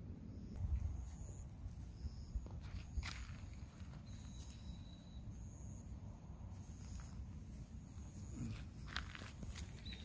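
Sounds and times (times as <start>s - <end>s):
steady low rumble: 0.0s - 10.0s
footsteps crunching on gravel: 2.4s - 4.7s, 6.8s - 10.0s.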